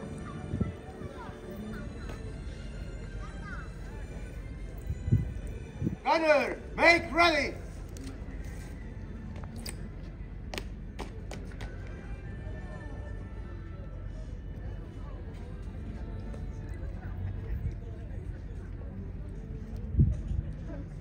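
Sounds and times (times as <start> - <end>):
low wind rumble: 0.0 - 1.5, 3.9 - 6.8, 12.0 - 21.0
faint music: 0.0 - 21.0.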